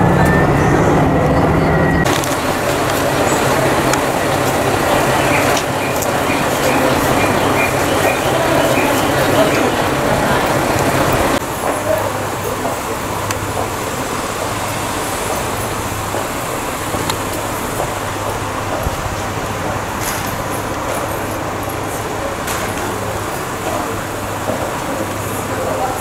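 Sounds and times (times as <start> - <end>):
road traffic noise: 0.0 - 26.0.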